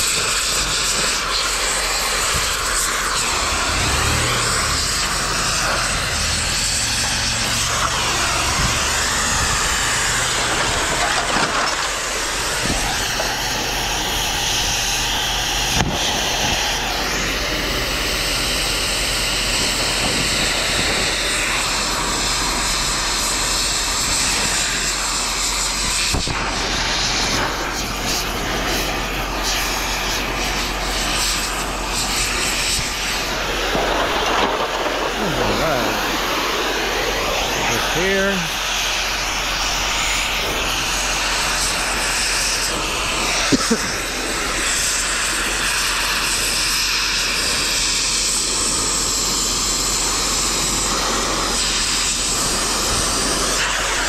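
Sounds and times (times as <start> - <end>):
cutting torch hissing: 0.0 - 54.0.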